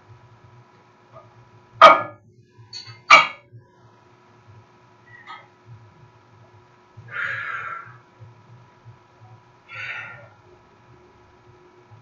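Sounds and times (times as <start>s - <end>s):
dog barking: 1.8s - 2.1s, 3.1s - 3.4s.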